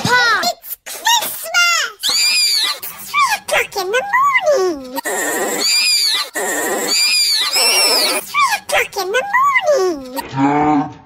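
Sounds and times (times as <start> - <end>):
cartoon pigs snorting and grunting: 2.0 - 10.7.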